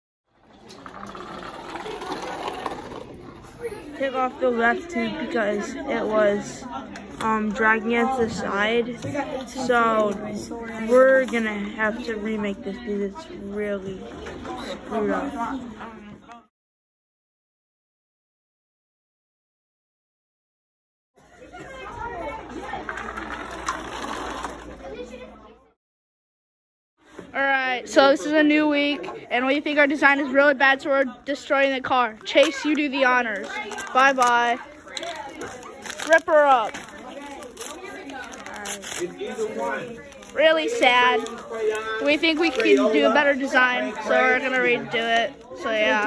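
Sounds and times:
classroom chatter: 0.4 - 16.5, 21.2 - 25.8, 27.1 - 46.0
toy car wheels rolling on wood: 0.6 - 3.3, 22.6 - 25.1.

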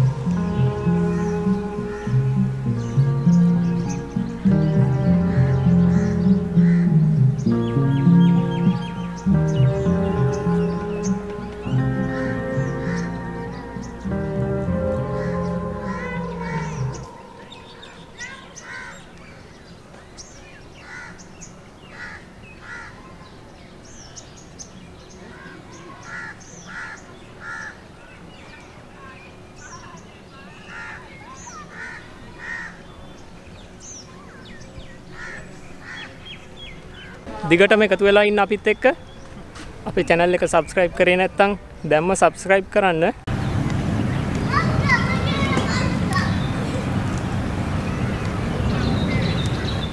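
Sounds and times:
steady low rumble: 0.0 - 18.9
high bird chirps: 0.0 - 19.5
harsh bird calls: 0.0 - 21.3, 29.0 - 42.2, 43.3 - 49.9.

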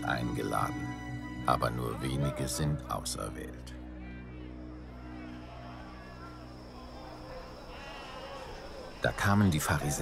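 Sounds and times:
quiet background ambience: 0.0 - 10.0.

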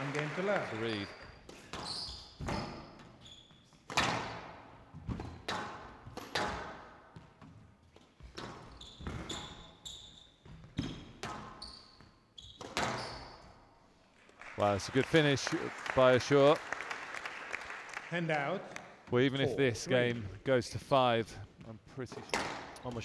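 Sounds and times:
shoes squeaking on court floor: 1.0 - 13.9
squash ball smacking off walls: 3.9 - 6.9.

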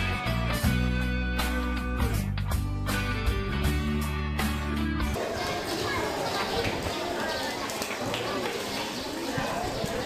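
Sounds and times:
audience chatter: 4.8 - 10.0.

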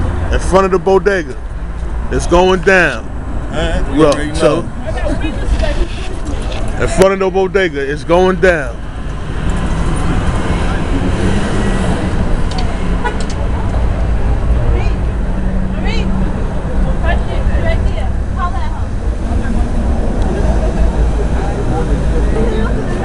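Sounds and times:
cars passing: 0.0 - 23.0
faint indistinct voices: 10.2 - 23.0.

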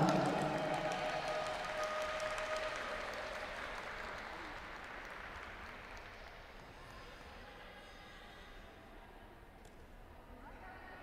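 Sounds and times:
audience applauding: 0.0 - 7.3.

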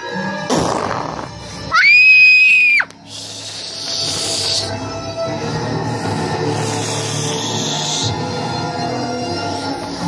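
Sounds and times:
background music: 0.0 - 10.0
high-pitched shriek: 1.7 - 4.8, 6.5 - 8.4.

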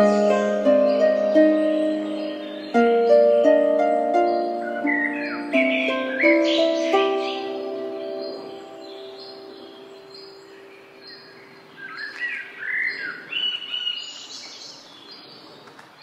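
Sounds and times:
musical chord ringing out: 0.0 - 11.0
birds chirping: 0.0 - 16.0
faint outdoor hiss: 0.0 - 16.0.

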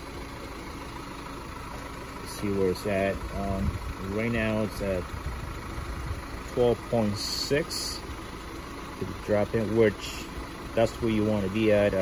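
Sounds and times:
engine-like low rumble: 0.0 - 12.0.

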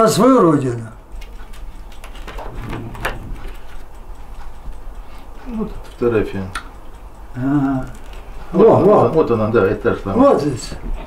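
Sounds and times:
low room hum: 0.0 - 11.0
album pages clicking: 1.1 - 5.0, 7.7 - 10.2.

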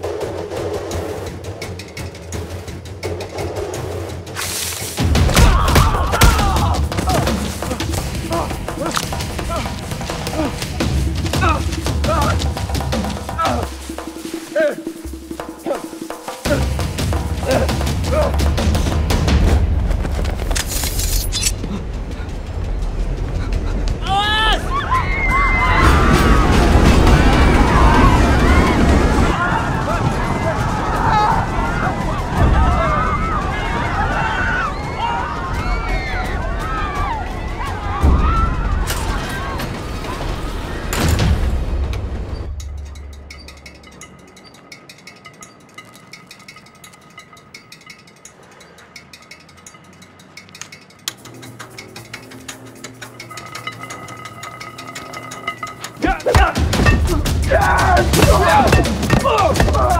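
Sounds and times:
moving train rumble: 0.0 - 59.9.

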